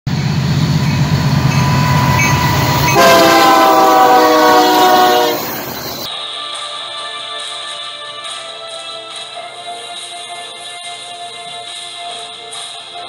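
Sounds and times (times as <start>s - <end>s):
locomotive engine rumble: 0.1s - 6.1s
train horn chord: 0.1s - 6.1s.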